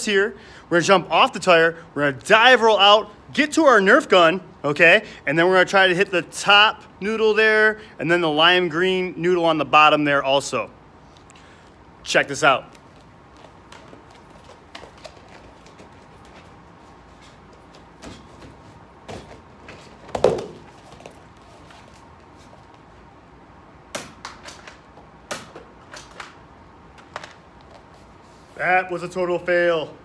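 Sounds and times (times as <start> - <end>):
thumps on rubber gym mat: 17.7 - 21.2.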